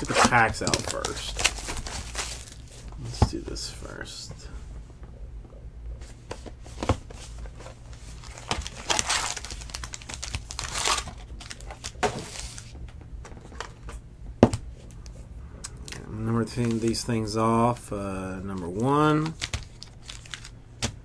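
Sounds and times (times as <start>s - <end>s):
foil packs crinkling: 0.0s - 2.9s, 7.9s - 12.7s, 18.3s - 20.9s.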